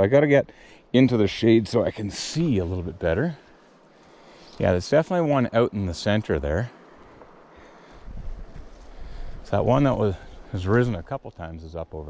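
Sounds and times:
faint outdoor hiss: 0:00.0 - 0:12.0
wind buffeting microphone: 0:07.9 - 0:11.1.

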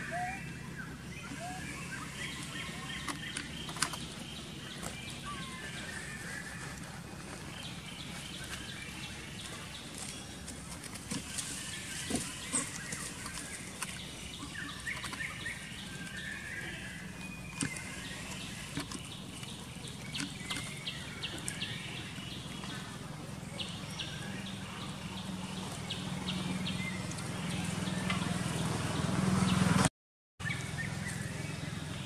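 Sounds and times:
high chirping calls: 0:00.0 - 0:03.5.

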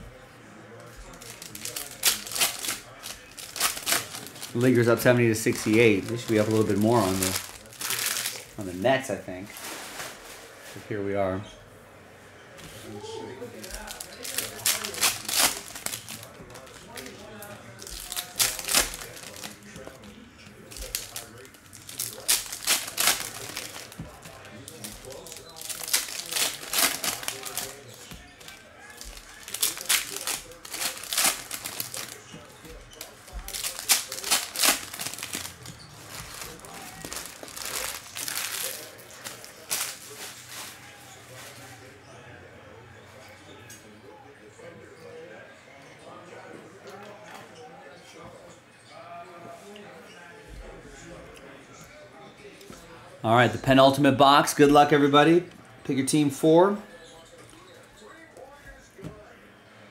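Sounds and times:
foil packs crinkling: 0:00.9 - 0:10.2, 0:13.5 - 0:41.6.

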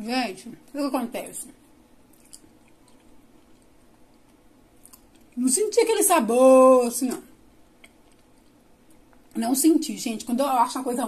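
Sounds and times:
faint chewing of bread: 0:01.5 - 0:05.4, 0:07.6 - 0:09.4.

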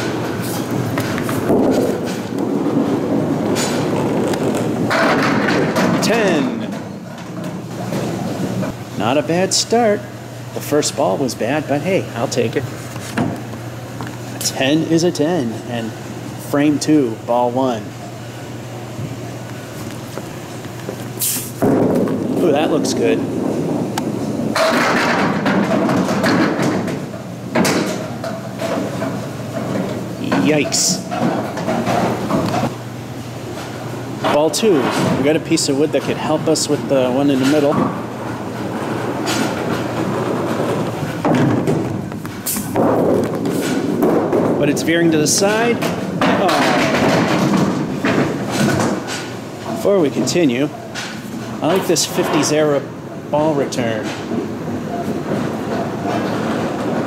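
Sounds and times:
bowling ball rolling on wooden lane: 0:00.0 - 0:08.8, 0:19.0 - 0:32.7, 0:33.5 - 0:50.4, 0:54.2 - 0:57.0
bowling pins crashing: 0:00.0 - 0:08.8, 0:21.5 - 0:32.7, 0:33.6 - 0:52.6.

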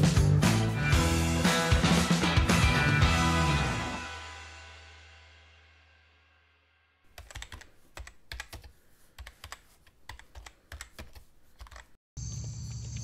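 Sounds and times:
keyboard keystroke clicks: 0:07.2 - 0:11.9.

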